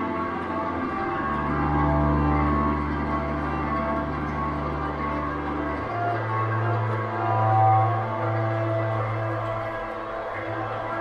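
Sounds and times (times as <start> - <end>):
low held string drone: 0.0 - 11.0.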